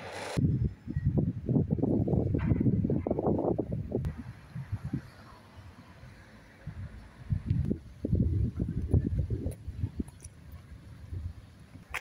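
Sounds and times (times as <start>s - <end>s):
wind buffeting microphone: 0.4s - 5.3s, 6.6s - 12.0s.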